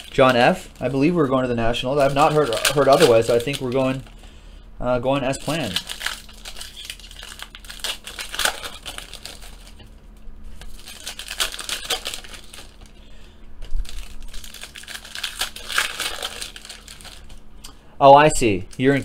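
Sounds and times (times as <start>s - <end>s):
foil wrappers crinkling: 0.0s - 4.4s, 5.0s - 17.4s, 18.3s - 19.0s.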